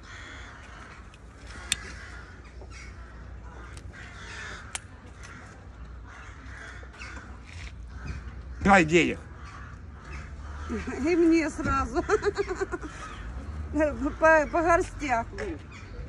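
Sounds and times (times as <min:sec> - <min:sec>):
birds calling: 0:00.0 - 0:16.0.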